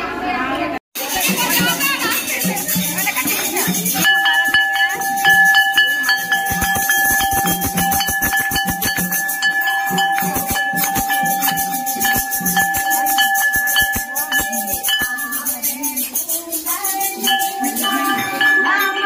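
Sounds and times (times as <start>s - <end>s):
crowd voices: 0.0s - 19.0s
temple bell ringing rapidly: 1.0s - 19.0s.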